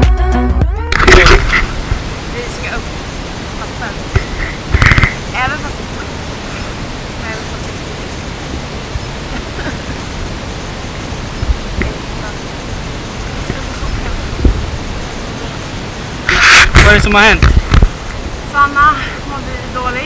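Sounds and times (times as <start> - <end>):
wind on microphone: 0.9 - 20.0
faint voices: 1.0 - 20.0.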